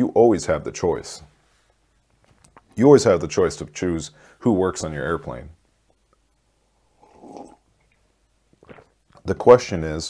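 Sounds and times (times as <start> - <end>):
person sipping from a mug: 6.9 - 9.1.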